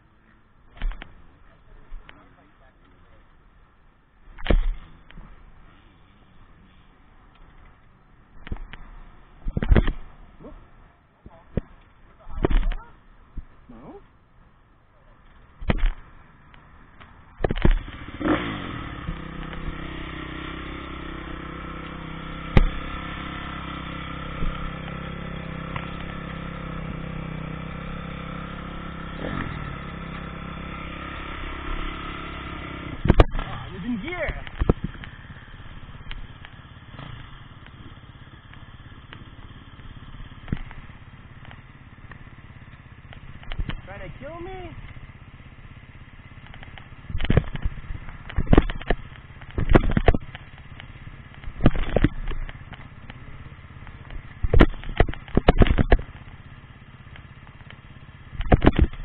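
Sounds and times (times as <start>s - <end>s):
dirt bike engine idling: 0.0s - 59.0s
sharp engine knock: 53.8s - 56.2s, 57.1s - 59.0s.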